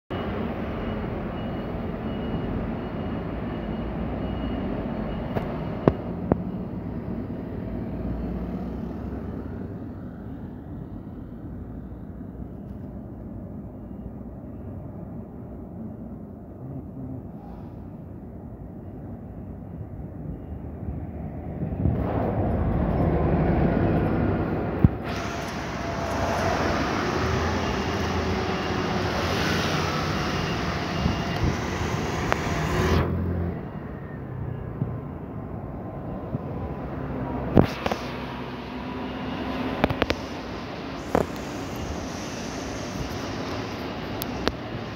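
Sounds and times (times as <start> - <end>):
bus engine running: 0.1 - 44.9
street traffic: 0.1 - 44.9.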